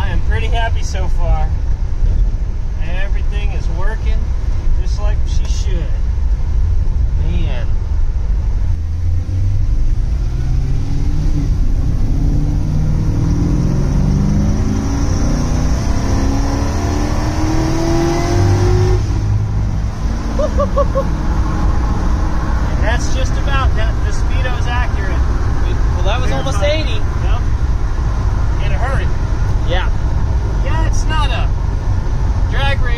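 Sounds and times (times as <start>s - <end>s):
engine accelerating hard: 8.6s - 32.9s
voices: 22.6s - 27.5s.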